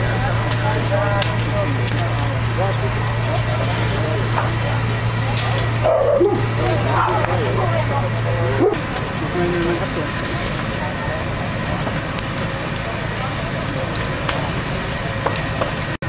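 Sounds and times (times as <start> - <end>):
distant voices: 0.0 - 16.0
pump engine low drone: 0.0 - 16.0.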